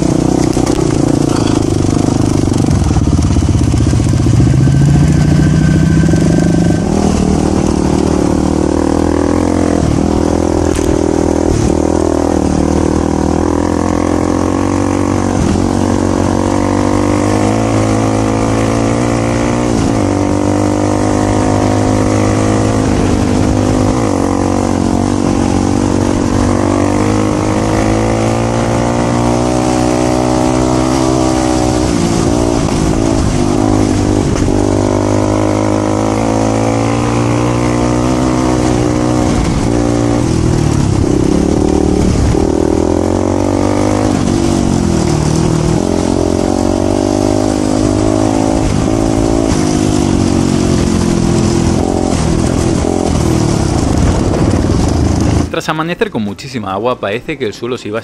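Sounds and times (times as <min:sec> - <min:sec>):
motorcycle engine revving: 0:00.0 - 0:55.6
wind and road noise hiss: 0:00.0 - 0:58.0.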